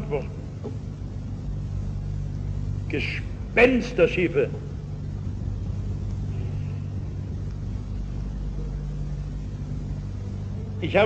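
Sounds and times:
low hum: 0.0 - 11.0
recording hiss: 0.0 - 11.0.

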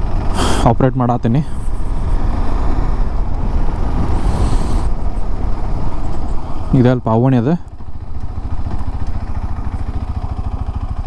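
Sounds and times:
motorcycle engine at low revs: 0.0 - 11.0.

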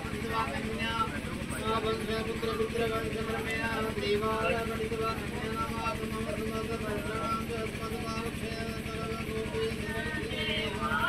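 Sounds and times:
low indistinct voices: 0.0 - 11.0
steady engine-like hum: 0.0 - 11.0.

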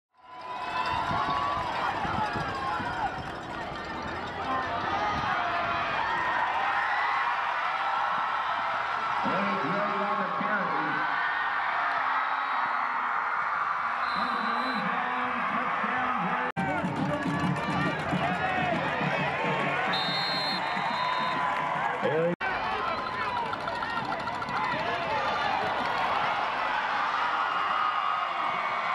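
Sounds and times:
crowd shouting and cheering: 0.2 - 28.9.

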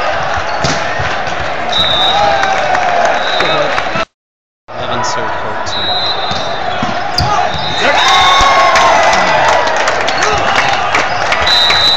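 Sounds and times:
crowd noise: 0.0 - 4.1, 4.7 - 11.9
players and spectators cheering: 0.0 - 4.1, 4.7 - 11.9.

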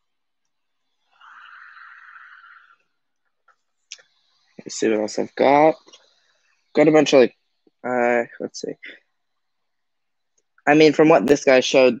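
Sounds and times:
man speaking: 4.6 - 6.0, 6.7 - 9.1, 10.6 - 12.0.

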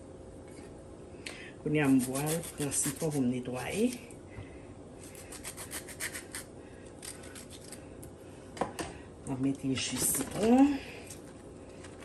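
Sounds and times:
knife cutting through lime: 1.8 - 3.2
lime rubbing over skin: 1.8 - 3.2, 5.0 - 6.5.

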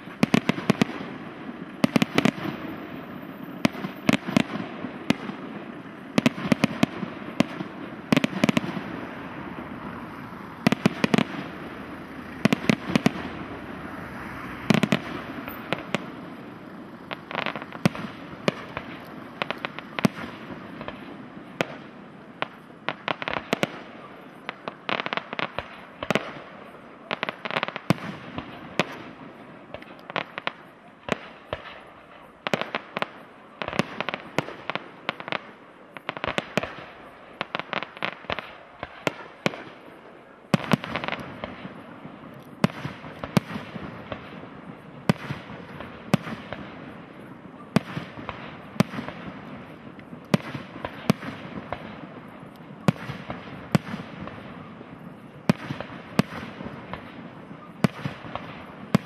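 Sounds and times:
fireworks bangs: 0.0 - 59.0
fireworks crackling: 0.0 - 59.0.

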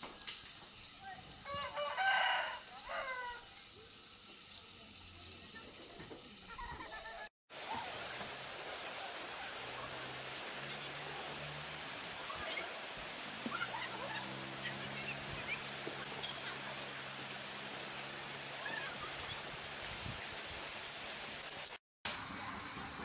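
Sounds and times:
rooster crowing: 1.4 - 3.5.

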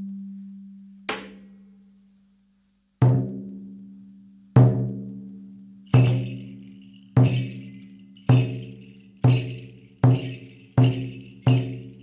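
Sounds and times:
frame drum beating: 6.0 - 12.0.

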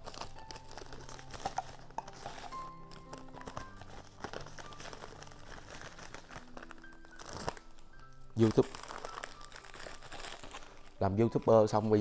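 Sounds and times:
packaging crinkling: 0.0 - 12.0.

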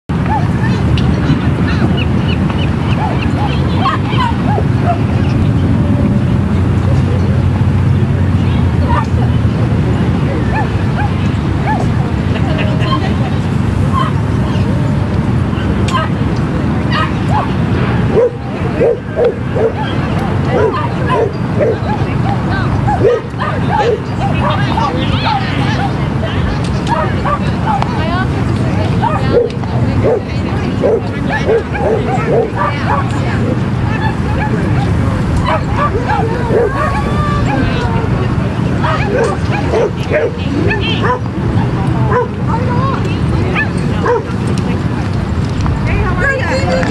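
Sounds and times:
wind rumble on microphone: 0.1 - 46.9
dog yipping: 13.9 - 14.6, 18.1 - 26.0, 33.9 - 37.8, 38.8 - 41.3, 43.5 - 44.3.

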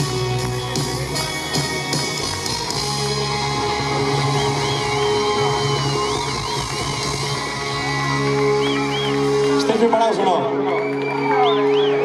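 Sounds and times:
live band playing instrumental: 0.0 - 12.0
steady bass notes: 0.0 - 12.0.

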